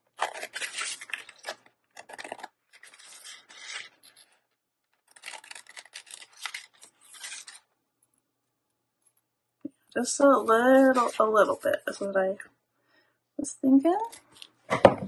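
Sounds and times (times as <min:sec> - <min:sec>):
scissors cutting paper: 0:00.1 - 0:04.3, 0:05.0 - 0:07.6
paper rustling: 0:00.1 - 0:07.7, 0:10.5 - 0:12.1.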